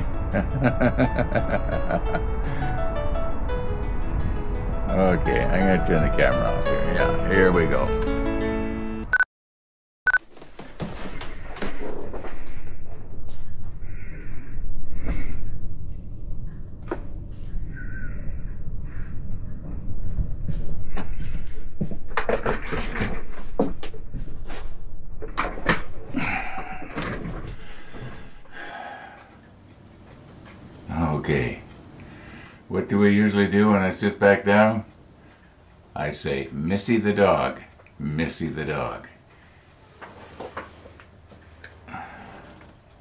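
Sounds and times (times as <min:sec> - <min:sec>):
music: 0:00.0 - 0:09.1.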